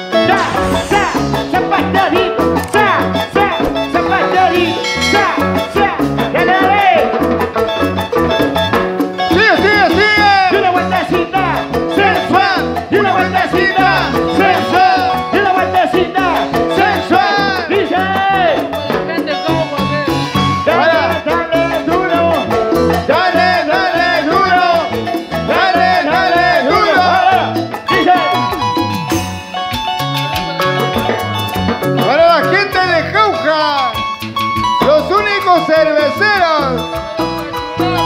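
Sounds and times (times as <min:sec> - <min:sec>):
bass line: 0:00.0 - 0:38.0
bright lead melody: 0:00.0 - 0:38.0
keyboard: 0:00.0 - 0:38.0
quick percussion beat: 0:00.0 - 0:38.0.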